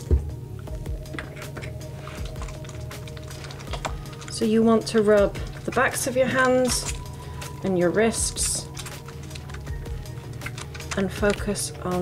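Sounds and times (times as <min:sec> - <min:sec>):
background music: 0:00.0 - 0:12.0
soapy hands rubbing squelchily: 0:01.1 - 0:11.5.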